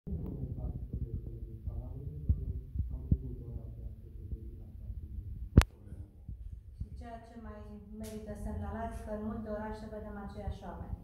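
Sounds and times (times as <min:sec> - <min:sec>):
faint muffled voices: 0:00.1 - 0:07.2.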